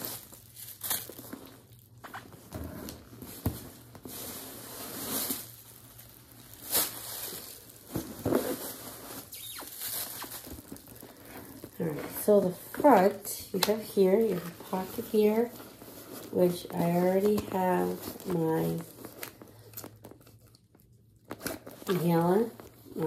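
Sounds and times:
bag rustling and crinkling: 0.0s - 23.0s.

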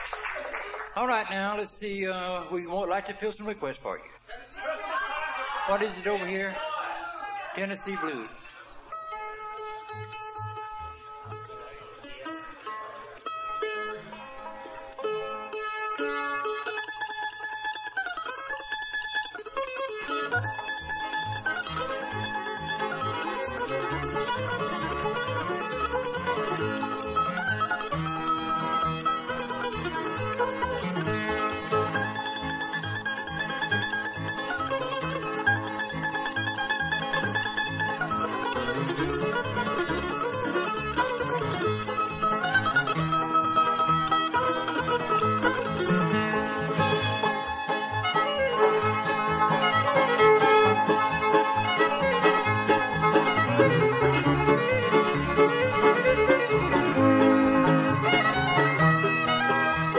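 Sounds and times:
bluegrass band playing: 0.0s - 59.9s
mandolin plucked notes: 1.0s - 4.3s, 5.6s - 6.6s, 7.6s - 59.9s.

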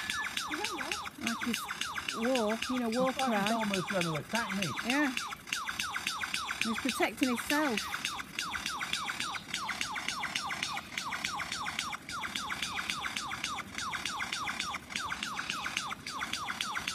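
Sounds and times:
bird singing whistled notes: 0.0s - 16.9s.

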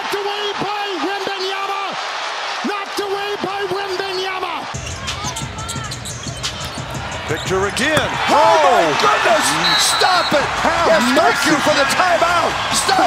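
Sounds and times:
arena crowd noise: 0.0s - 13.0s
sneakers squeaking on hardwood: 4.8s - 8.3s.

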